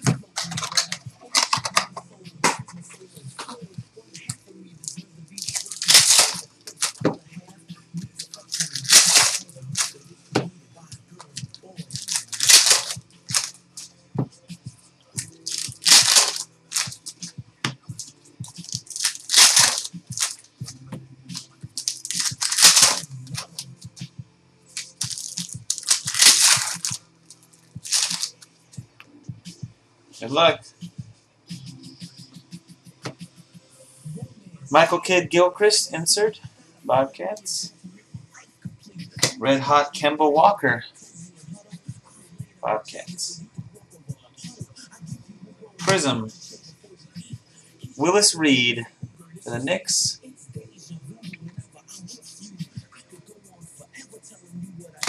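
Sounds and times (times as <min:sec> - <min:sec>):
cards clicking and rustling: 0:00.4 - 0:02.6, 0:05.4 - 0:07.1, 0:08.2 - 0:10.5, 0:11.2 - 0:13.6, 0:15.5 - 0:17.3, 0:18.5 - 0:20.5, 0:21.4 - 0:23.7, 0:24.8 - 0:28.4
foil packs ripping open: 0:05.4 - 0:07.0, 0:08.2 - 0:09.9, 0:12.0 - 0:13.5, 0:15.4 - 0:17.2, 0:18.6 - 0:20.4, 0:21.8 - 0:23.6, 0:24.8 - 0:27.0, 0:27.9 - 0:28.4.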